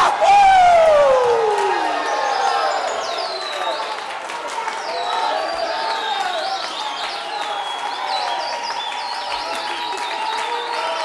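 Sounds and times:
congregation shouting and cheering: 0.0s - 11.0s.

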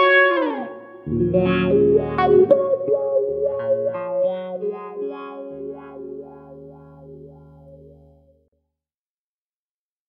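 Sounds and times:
electric guitar with wah pedal: 0.0s - 8.2s.

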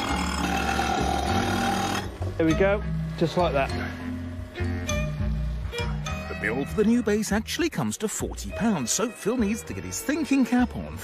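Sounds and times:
power saw cutting glass: 0.0s - 2.2s.

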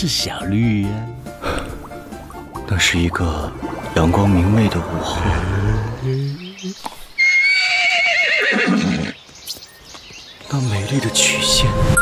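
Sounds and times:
horse whinnying: 7.2s - 9.2s.

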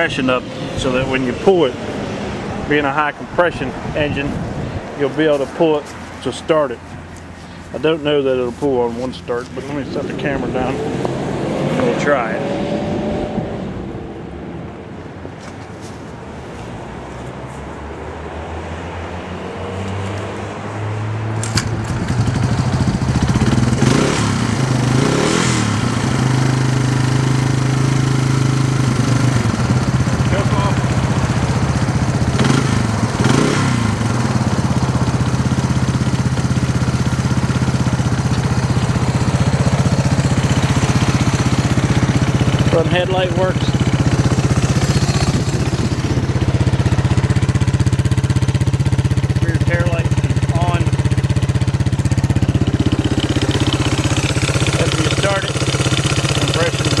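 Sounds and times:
engine throttle blips: 0.0s - 14.8s, 19.9s - 57.0s
two-stroke engine idling: 21.5s - 57.0s.

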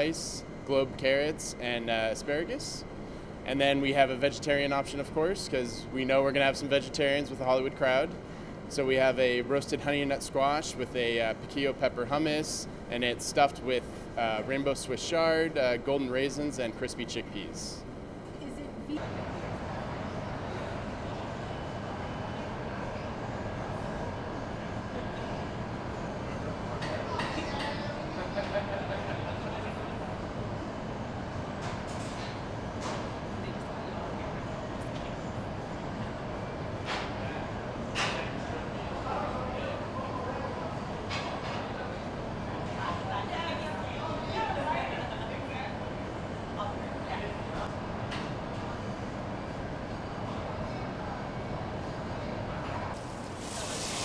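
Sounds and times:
kitchen exhaust fans rushing: 0.0s - 54.0s.

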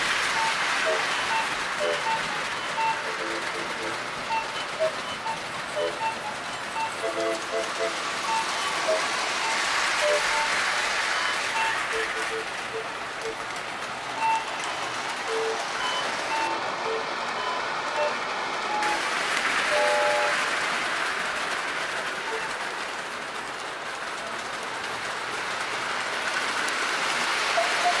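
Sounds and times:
toy train wheels clattering on rails: 0.0s - 28.0s.

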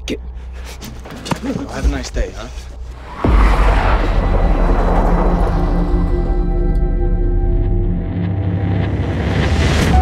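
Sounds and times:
deep noisy rumble: 3.0s - 9.8s.

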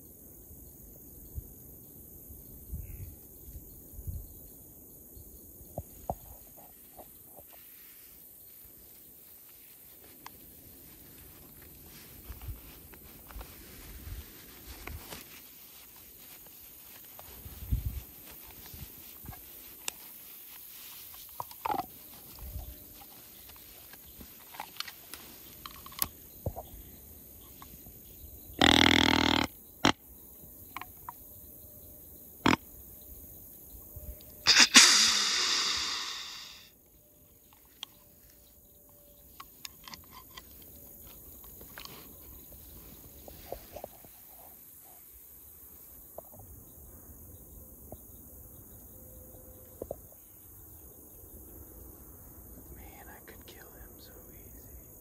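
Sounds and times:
deer hissing burst: 34.5s - 36.7s.

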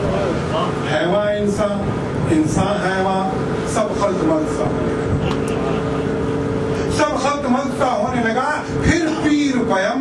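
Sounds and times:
boat engines droning: 0.0s - 10.0s.

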